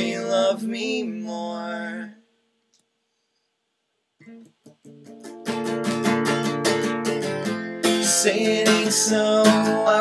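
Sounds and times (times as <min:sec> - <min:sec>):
person singing: 0:00.0 - 0:02.2, 0:07.4 - 0:10.0
acoustic guitar strumming: 0:04.2 - 0:10.0.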